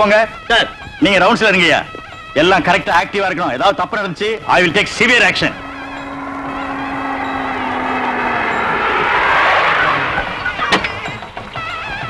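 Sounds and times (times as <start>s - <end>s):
car driving up: 4.7s - 12.0s.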